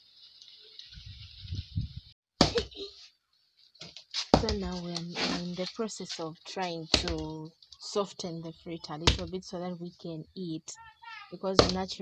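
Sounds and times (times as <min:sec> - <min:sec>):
low microphone rumble: 0:01.0 - 0:02.1
fruit thudding on concrete: 0:03.8 - 0:05.4, 0:06.9 - 0:07.3, 0:11.6 - 0:11.9.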